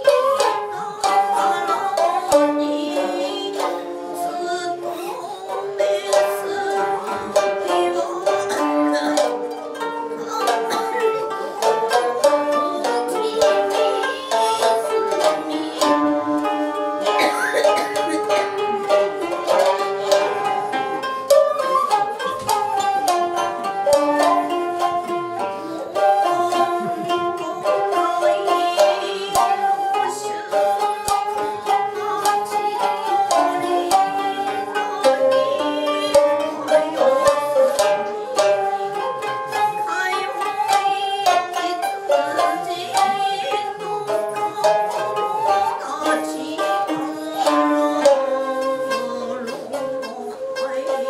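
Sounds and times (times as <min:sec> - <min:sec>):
long held notes: 0:00.0 - 0:51.0
plucked strings melody: 0:00.0 - 0:51.0.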